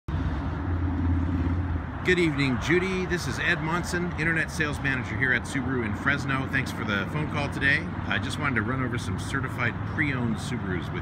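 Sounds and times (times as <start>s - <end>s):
vehicle engine rumbling: 0.1s - 11.0s.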